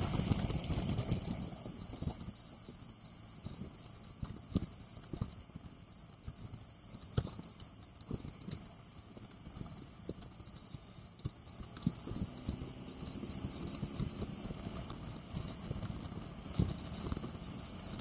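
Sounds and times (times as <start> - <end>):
motorcycle riding: 0.0 - 18.0
wind and road noise: 0.0 - 18.0.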